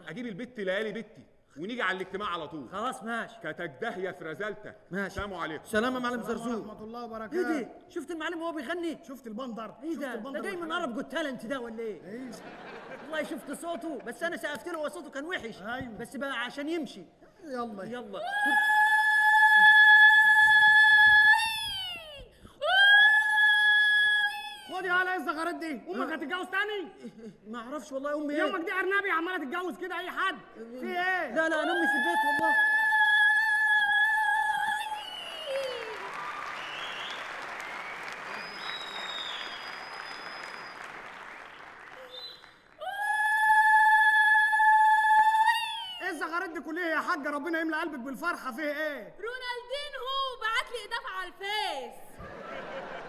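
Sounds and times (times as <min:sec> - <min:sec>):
woman ululating: 0:18.2 - 0:24.7, 0:31.6 - 0:36.2, 0:42.8 - 0:46.0
woman's high-pitched vocal cry: 0:18.2 - 0:24.8, 0:31.5 - 0:35.0
audience applauding: 0:34.4 - 0:43.0.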